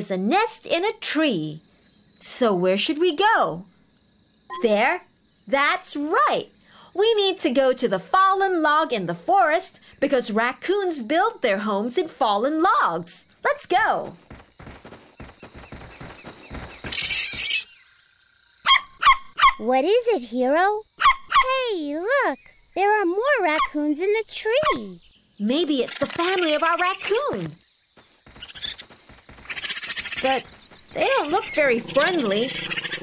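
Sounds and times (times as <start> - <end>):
cartoon running footsteps: 13.4 - 17.7, 27.0 - 32.9.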